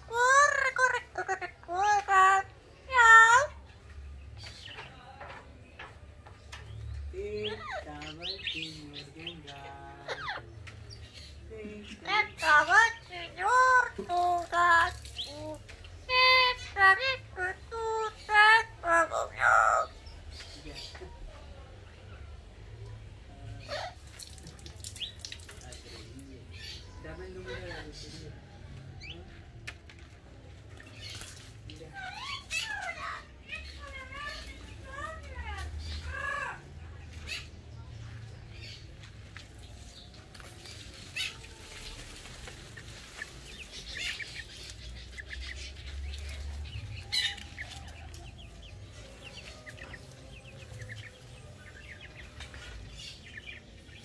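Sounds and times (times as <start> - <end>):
parrot squawking: 0.0 - 3.6, 12.0 - 15.4, 16.1 - 20.0.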